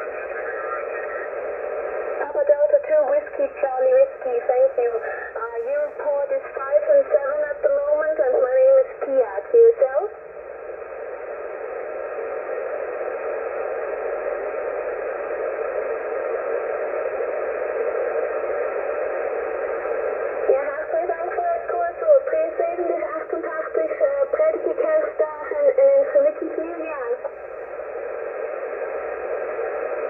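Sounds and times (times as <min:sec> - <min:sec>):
faint radio voices: 0:00.0 - 0:10.2, 0:11.0 - 0:30.0
radio band noise hiss: 0:00.0 - 0:30.0.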